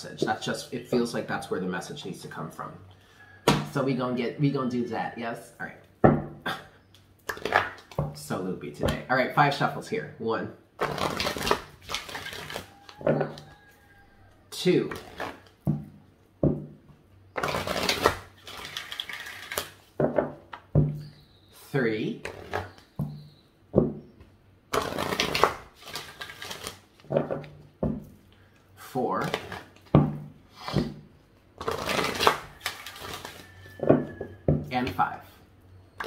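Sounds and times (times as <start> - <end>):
cards thump: 3.5 - 3.8
cards sliding and rustling: 10.8 - 13.5, 17.4 - 20.0, 24.7 - 27.1, 31.6 - 33.6.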